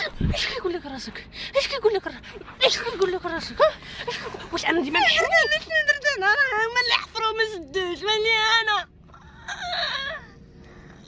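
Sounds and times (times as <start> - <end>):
woman sobbing: 9.2 - 10.4.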